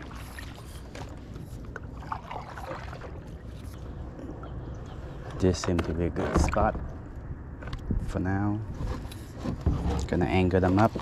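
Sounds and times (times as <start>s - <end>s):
paddle splashing water: 0.0s - 3.9s
steady low rumble: 3.1s - 8.8s.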